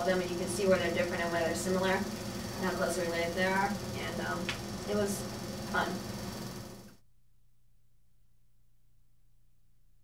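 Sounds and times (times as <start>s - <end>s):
steady hiss: 0.0s - 6.9s
low hum: 0.0s - 10.0s.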